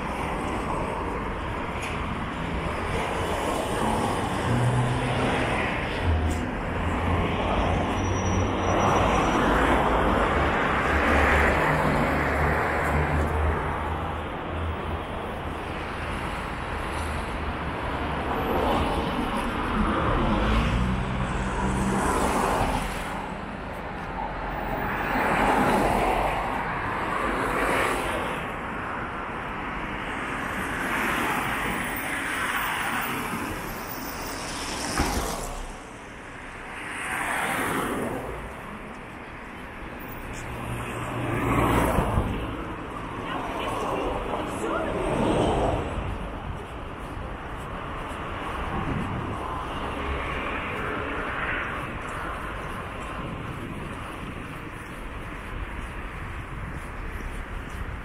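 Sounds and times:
vehicles passing: 0.0 - 58.0.

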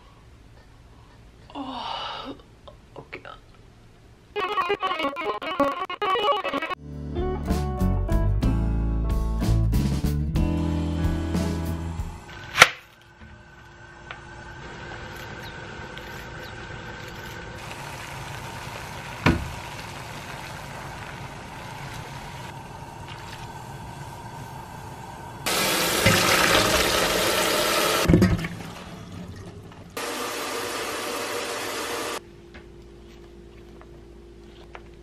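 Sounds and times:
running tap water: 14.6 - 23.5, 25.5 - 32.2.

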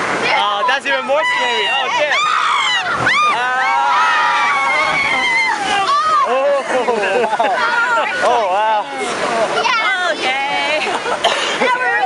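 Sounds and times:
rushing water: 0.0 - 12.0
people crying out: 1.3 - 8.9.

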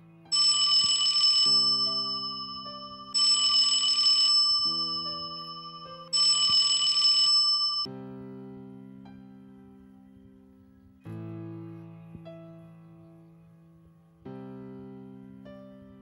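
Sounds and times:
soft keyboard music: 0.0 - 16.0
smartphone ringing: 0.3 - 7.9.

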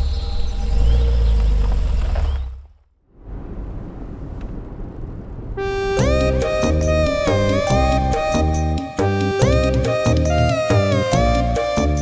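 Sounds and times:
car engine rumble: 0.0 - 9.6
synthesizer chord: 5.6 - 12.0.

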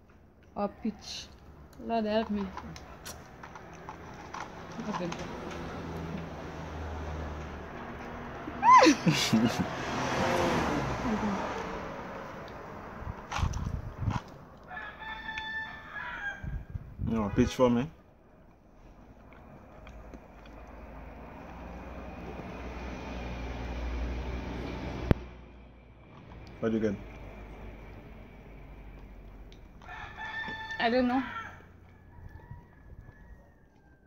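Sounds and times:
distant rooster crowing: 14.6 - 16.8, 29.8 - 34.0.

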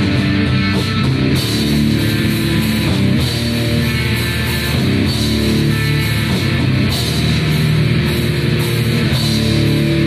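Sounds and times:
punk band playing: 0.0 - 10.0.

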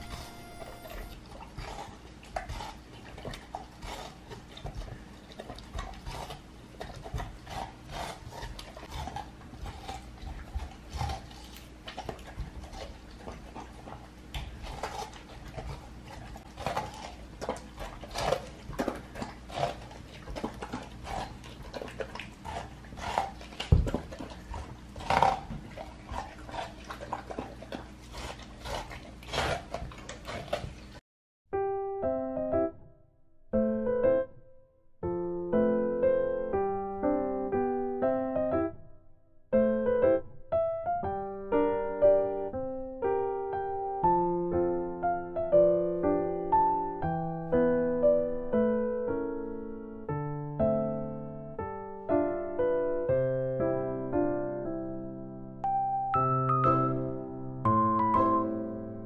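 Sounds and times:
dog chewing and crunching: 0.0 - 31.0, 57.7 - 58.5.

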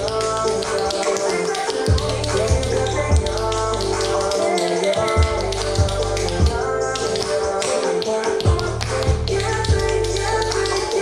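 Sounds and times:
recorded pop song: 0.0 - 11.0.

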